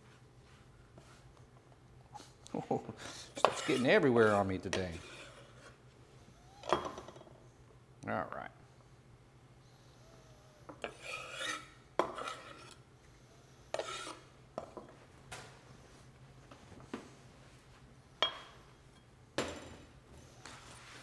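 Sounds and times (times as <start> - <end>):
knife scraping on cutting board: 3.3 - 5.8, 10.8 - 12.8, 13.7 - 14.3.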